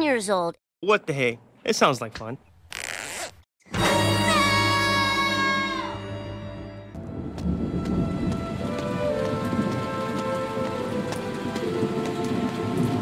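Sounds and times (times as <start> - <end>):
low rumble of thunder: 7.0 - 13.0
steady rain: 7.2 - 13.0.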